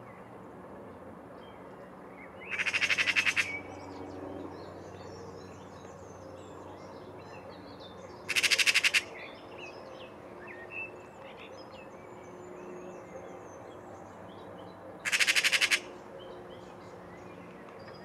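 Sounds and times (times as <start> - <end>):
magpie rattling chatter: 2.5 - 3.6, 8.3 - 9.2, 15.0 - 15.9.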